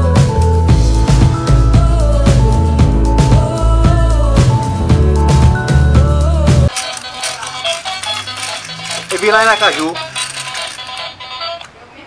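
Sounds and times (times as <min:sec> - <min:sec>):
tinny electronic toy melody: 0:06.7 - 0:11.7.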